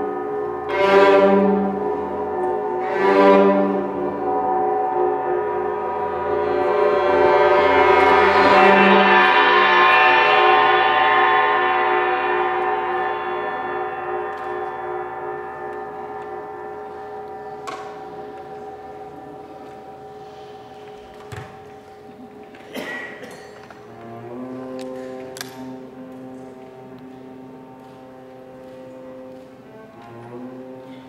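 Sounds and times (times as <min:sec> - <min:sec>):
gong ringing: 0:00.0 - 0:22.3.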